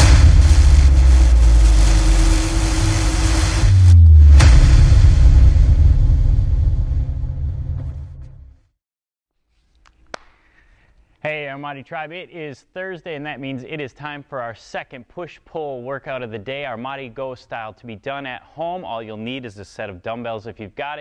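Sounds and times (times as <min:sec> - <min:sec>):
whooshing: 0:00.0 - 0:07.6
sharp hit: 0:00.0 - 0:08.4
deep rumble: 0:00.0 - 0:08.5.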